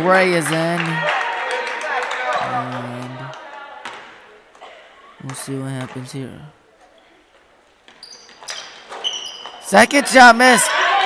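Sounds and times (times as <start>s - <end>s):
sneakers squeaking on hardwood: 6.8s - 9.8s.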